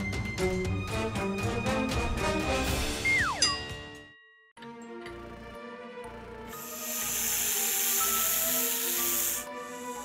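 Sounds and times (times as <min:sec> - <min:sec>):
background music: 0:00.0 - 0:10.0
loud steady hiss: 0:06.6 - 0:10.0.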